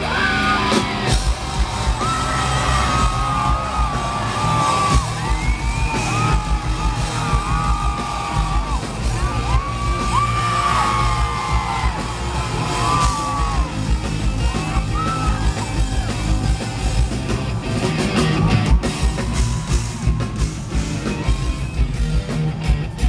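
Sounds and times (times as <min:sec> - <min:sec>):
bass guitar: 0:00.0 - 0:23.0
distorted electric guitar: 0:00.0 - 0:23.0
high lead line with bending notes: 0:00.0 - 0:23.0
live rock band playing: 0:00.0 - 0:23.0
pounding drums: 0:00.7 - 0:23.0.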